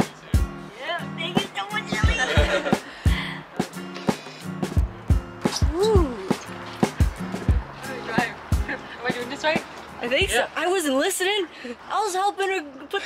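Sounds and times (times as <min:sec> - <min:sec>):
background music with drum beat: 0:00.0 - 0:10.5.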